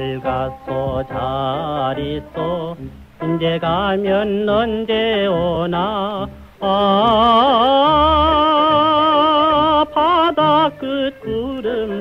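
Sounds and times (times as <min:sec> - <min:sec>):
instrumental accompaniment: 0:00.0 - 0:12.0
person singing with vibrato: 0:00.0 - 0:12.0.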